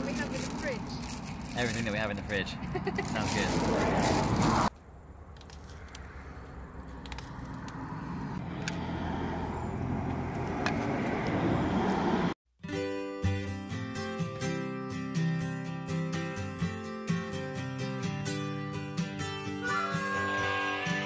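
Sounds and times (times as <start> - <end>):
outdoor background noise: 0.0 - 12.4
acoustic guitar music: 12.6 - 21.0.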